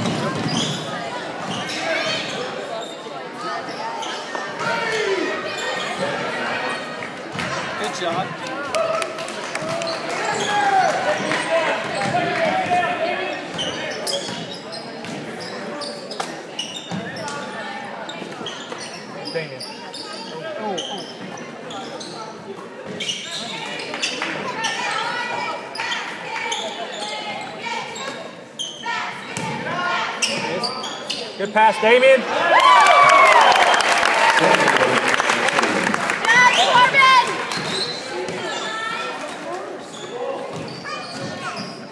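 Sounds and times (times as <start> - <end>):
spectators shouting: 32.2 - 35.0.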